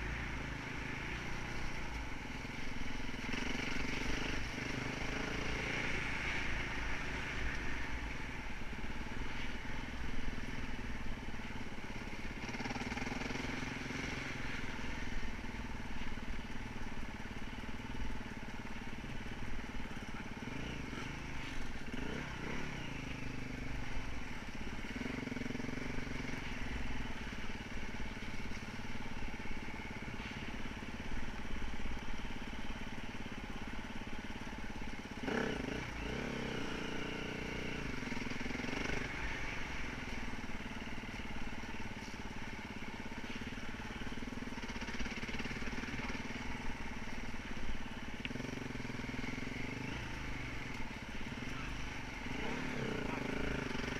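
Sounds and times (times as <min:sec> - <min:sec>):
motorcycle engine revving: 0:00.0 - 0:53.9.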